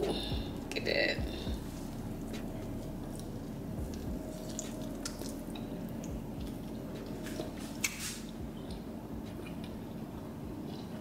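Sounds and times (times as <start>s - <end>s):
chewing: 2.3s - 9.9s.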